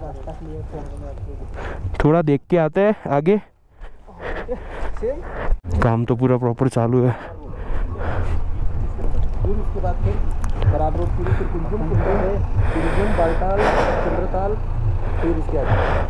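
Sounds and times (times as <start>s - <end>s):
diesel engines rumbling: 0.0s - 16.0s
people's voices: 2.8s - 16.0s.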